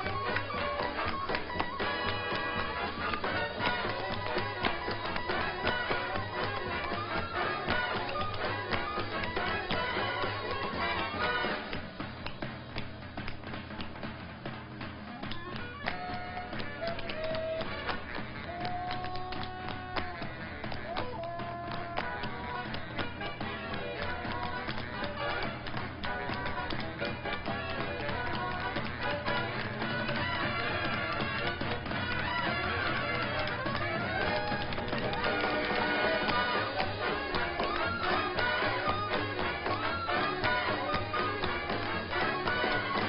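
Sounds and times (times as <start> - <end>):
tap shoes on hard floor: 0.0 - 43.0
dance music: 15.0 - 43.0.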